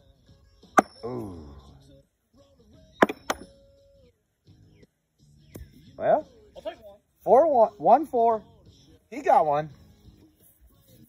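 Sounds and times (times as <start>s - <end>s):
metal washers clanking on a board: 3.0s - 3.5s.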